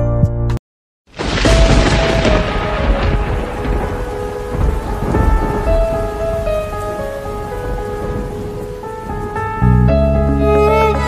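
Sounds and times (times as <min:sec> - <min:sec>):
rain: 0:01.1 - 0:11.0
low thunder rumbles: 0:01.2 - 0:11.0
soft melody of sustained notes: 0:03.2 - 0:11.0.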